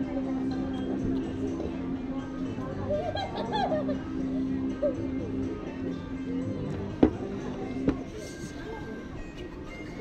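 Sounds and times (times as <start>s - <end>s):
background music: 0.0s - 10.0s
faint voices: 0.0s - 10.0s.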